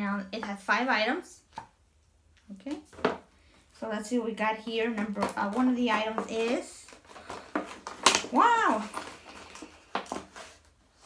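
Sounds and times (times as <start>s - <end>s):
sharp plastic crackle: 5.0s - 10.3s
plastic pouch rustling and crinkling: 5.0s - 11.0s.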